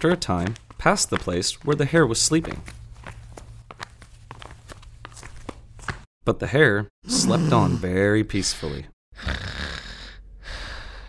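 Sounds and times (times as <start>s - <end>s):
soft slow footsteps: 0.0s - 6.1s.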